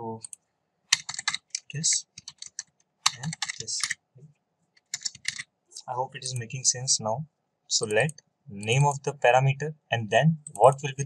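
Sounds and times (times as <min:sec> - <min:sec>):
computer keyboard typing: 0:00.9 - 0:04.0, 0:04.8 - 0:05.4.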